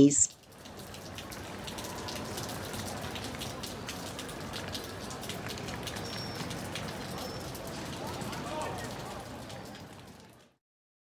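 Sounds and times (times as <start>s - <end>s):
steady rain falling: 0.1s - 10.6s
raindrop ticks: 0.2s - 10.6s.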